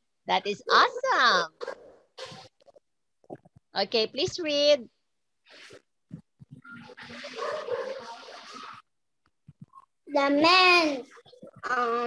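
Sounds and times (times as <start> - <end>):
child reading aloud: 10.1 - 12.0.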